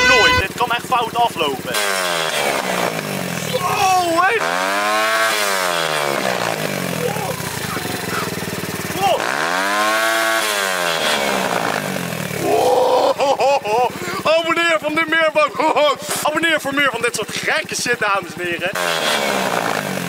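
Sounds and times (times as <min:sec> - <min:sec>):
motorbike engine revving: 0:00.0 - 0:20.0.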